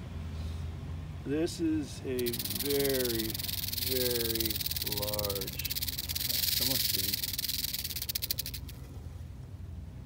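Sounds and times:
rattlesnake tail rattle buzzing: 2.2s - 8.8s.

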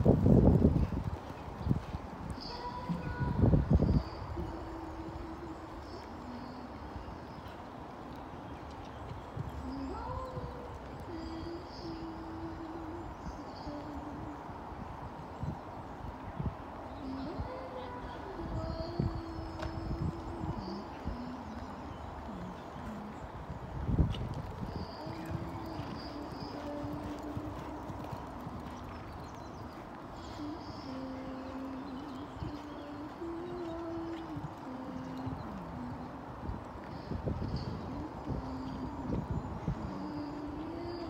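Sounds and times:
horse hooves thudding on sand: 0.0s - 4.2s, 23.9s - 36.0s
horse hooves cantering on sand: 0.0s - 14.3s, 17.0s - 41.0s.

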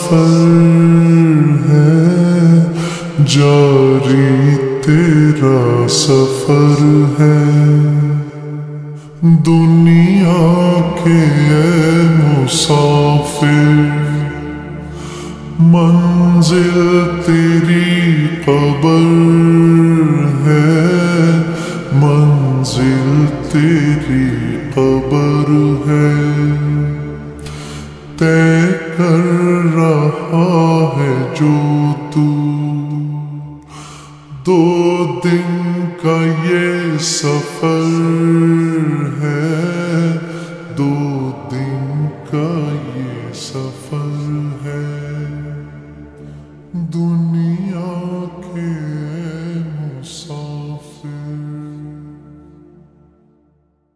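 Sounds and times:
person singing long reverberant notes: 0.0s - 53.9s.

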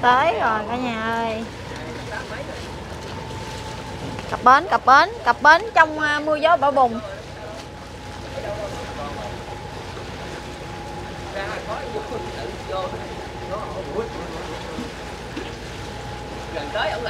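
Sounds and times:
boat engine running slowly: 0.0s - 17.0s.

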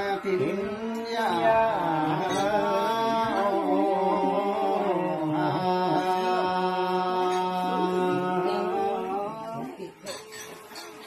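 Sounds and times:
men chanting wavering notes: 0.0s - 10.1s.

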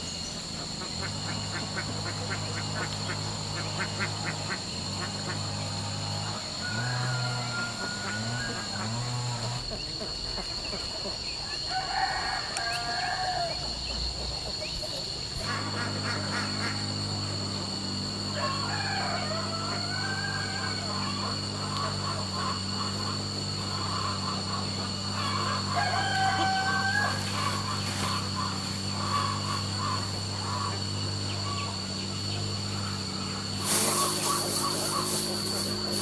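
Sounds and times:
ducks quacking: 0.6s - 6.5s, 14.3s - 17.5s, 20.8s - 36.0s.

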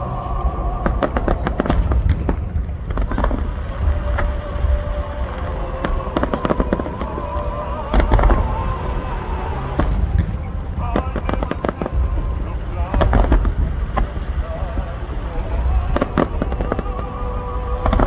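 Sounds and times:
firework crackling: 0.0s - 18.0s
deep rumble of distant booms: 0.6s - 14.8s
firework shells bursting: 0.8s - 4.4s, 5.2s - 18.0s.

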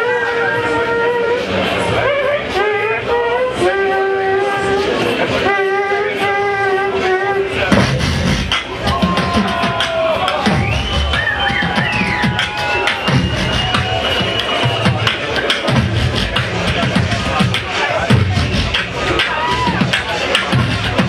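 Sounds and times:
woman beatboxing: 5.8s - 21.0s.

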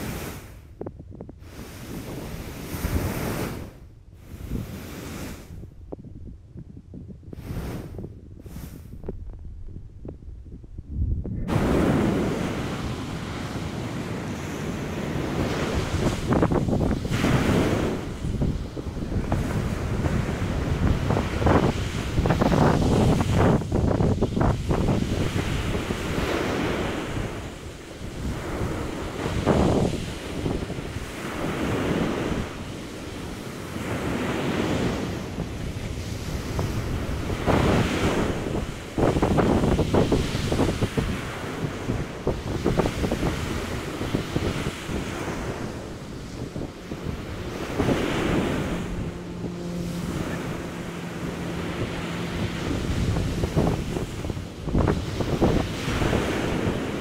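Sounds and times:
ocean surf breaking on beach: 0.0s - 0.7s, 1.3s - 5.7s, 7.3s - 9.0s, 11.4s - 57.0s
wind on microphone: 0.0s - 57.0s.

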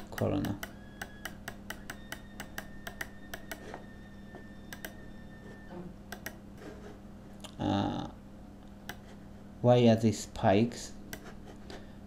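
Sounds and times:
computer mouse clicks: 0.0s - 3.6s, 4.7s - 5.0s, 6.1s - 6.4s
faint steady hum: 0.0s - 12.0s.

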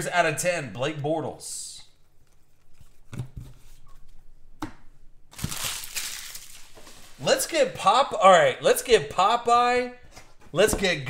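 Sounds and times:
cards crinkling rustle: 5.3s - 7.3s.

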